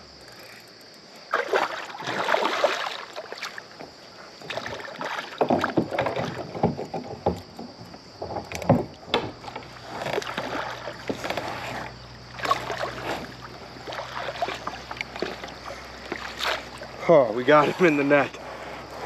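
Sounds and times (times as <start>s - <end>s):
fish splashing at the surface: 1.3s - 3.7s, 4.4s - 6.4s, 9.8s - 17.0s.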